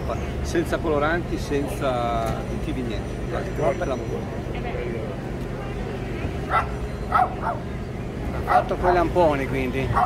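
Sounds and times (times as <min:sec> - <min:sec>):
dog yipping: 0:06.5 - 0:07.7.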